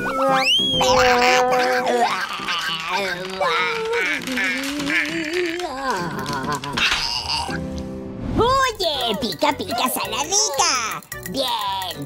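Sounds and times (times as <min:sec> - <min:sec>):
cartoonish voice wailing: 0:00.0 - 0:07.6.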